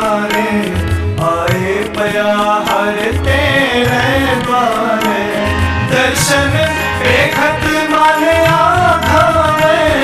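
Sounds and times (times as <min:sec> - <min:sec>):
harmonium melody: 0:00.0 - 0:10.0
tabla drumming: 0:00.0 - 0:10.0.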